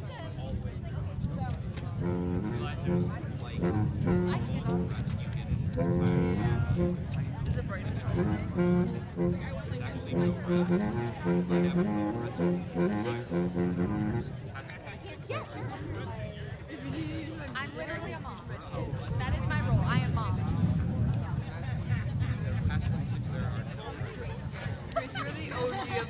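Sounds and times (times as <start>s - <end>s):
people talking: 0.0s - 26.0s
school band playing held notes: 2.0s - 5.0s, 5.8s - 7.1s, 8.2s - 14.3s.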